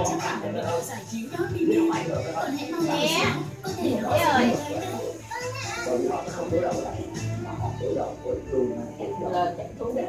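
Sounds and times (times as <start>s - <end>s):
background music: 0.0s - 10.0s
children chattering and calling out: 2.4s - 6.5s.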